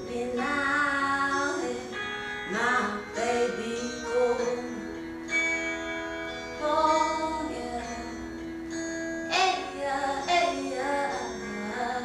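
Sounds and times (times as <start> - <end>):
soft musical accompaniment: 0.0 - 12.0.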